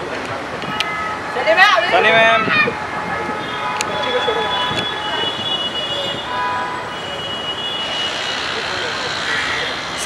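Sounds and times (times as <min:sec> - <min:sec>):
traffic hum: 0:00.0 - 0:10.0.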